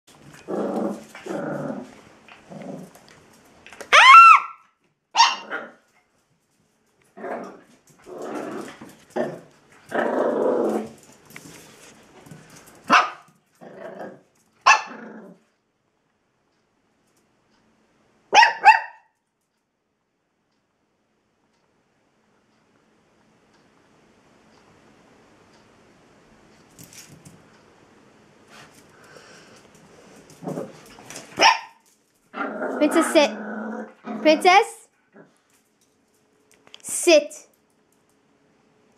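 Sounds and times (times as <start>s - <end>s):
small dog growling: 0.2s - 3.1s, 7.2s - 11.0s, 13.6s - 15.5s, 30.3s - 31.1s, 32.3s - 34.5s, 35.1s - 35.4s
small dog yelp: 3.9s - 5.7s, 14.6s - 15.0s, 18.3s - 19.2s, 31.4s - 31.8s
small dog barking: 3.9s - 5.8s, 12.9s - 13.3s, 14.6s - 15.1s, 18.3s - 19.2s, 31.4s - 31.8s.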